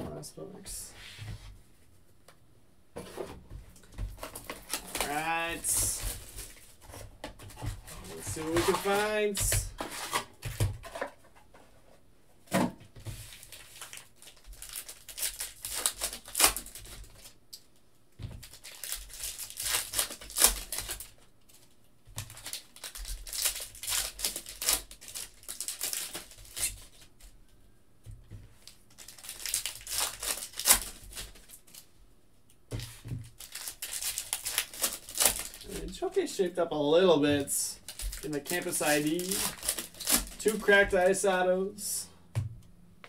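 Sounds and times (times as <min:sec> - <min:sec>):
plastic wrappers tearing and crinkling: 0:04.2 - 0:10.3, 0:13.2 - 0:17.7, 0:18.3 - 0:27.3, 0:28.6 - 0:31.9, 0:32.8 - 0:36.0, 0:37.7 - 0:41.1.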